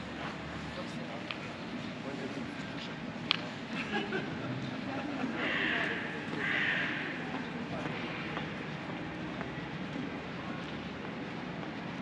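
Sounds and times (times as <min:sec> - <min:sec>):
city street noise: 0:00.0 - 0:12.0.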